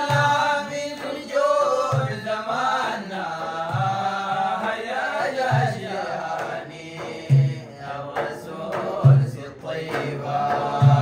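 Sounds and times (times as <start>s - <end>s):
men singing in unison: 0.0s - 11.0s.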